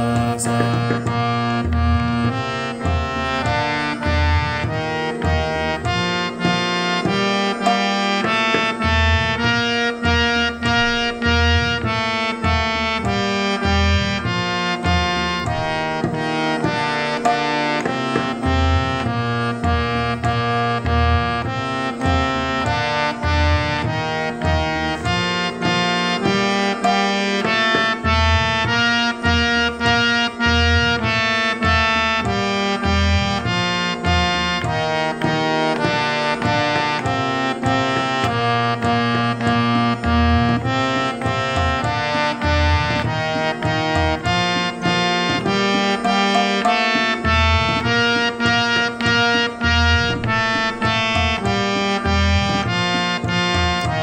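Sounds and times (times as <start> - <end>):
harmonium drone: 0.0 - 54.0
harmonium playing scale: 0.0 - 54.0
tabla beat: 0.0 - 54.0.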